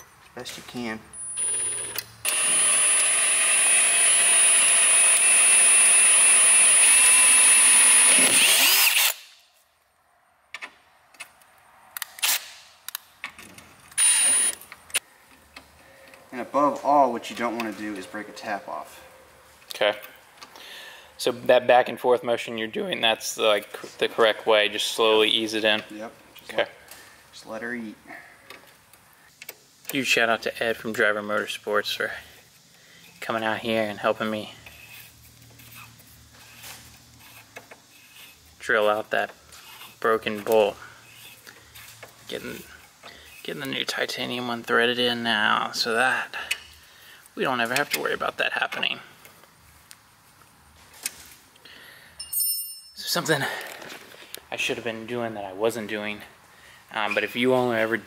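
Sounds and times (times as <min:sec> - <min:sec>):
cordless drill drilling metal: 0:01.4 - 0:09.2, 0:14.0 - 0:14.6.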